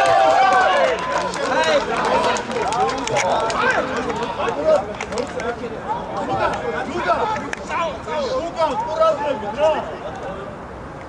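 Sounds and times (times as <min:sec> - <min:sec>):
people shouting: 0:00.0 - 0:04.5.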